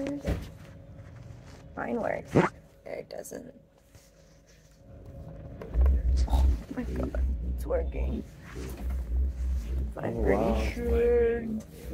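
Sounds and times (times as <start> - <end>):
faint steady hum: 0.0 - 11.9
massage motor low rumble: 0.0 - 11.9.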